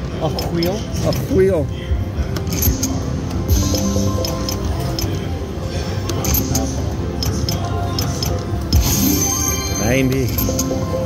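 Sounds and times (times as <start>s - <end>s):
slot machine electronic music: 0.0s - 11.0s
slot machine clicks and clinks: 2.4s - 5.3s, 6.0s - 11.0s.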